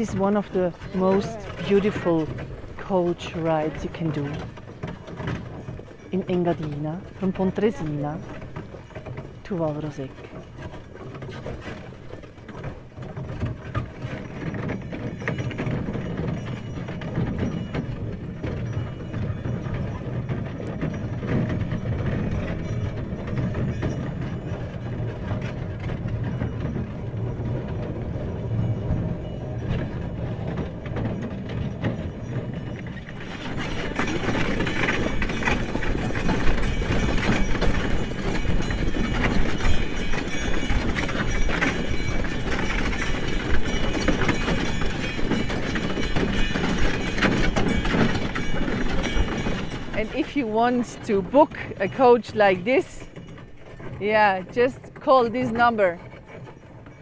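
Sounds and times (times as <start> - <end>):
hoofbeats on packed snow: 0.0 - 57.0
sleigh rattling and creaking: 0.0 - 57.0.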